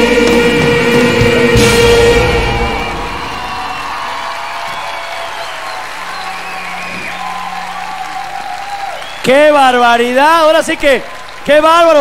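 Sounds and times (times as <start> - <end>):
audience applauding: 1.6 - 12.0.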